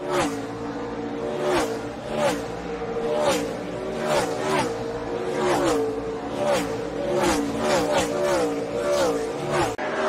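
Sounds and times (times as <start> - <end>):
race car engines passing: 0.0 - 10.0.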